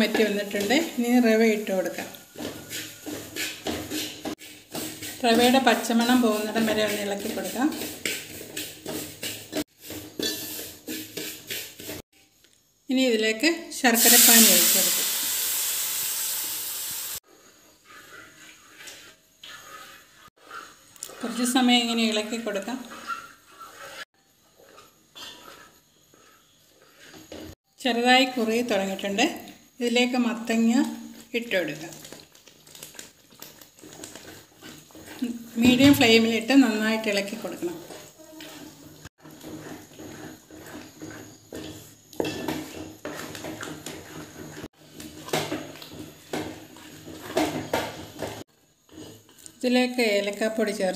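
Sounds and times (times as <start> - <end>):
spatula scraping and stirring: 0.0 - 12.2, 17.2 - 50.9
syrup sizzling in hot pan: 14.0 - 17.2.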